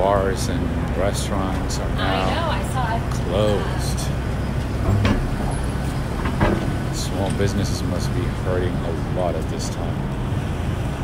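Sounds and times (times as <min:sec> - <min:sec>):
motor vehicles rumbling: 0:00.0 - 0:11.0.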